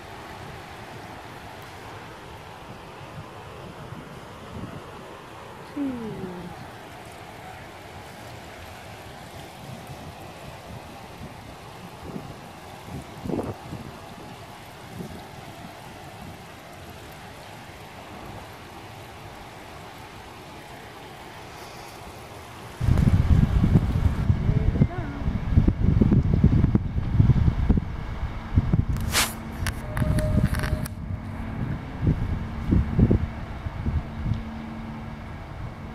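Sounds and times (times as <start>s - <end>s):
wind buffeting microphone: 0.0s - 21.2s, 21.9s - 35.9s
river running over rocks: 0.0s - 25.5s.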